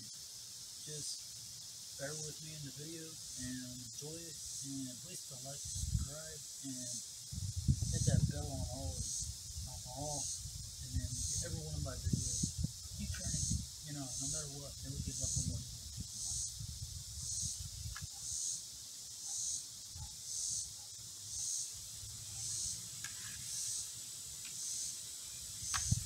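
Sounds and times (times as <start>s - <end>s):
insects buzzing in pulses: 0.0s - 26.0s.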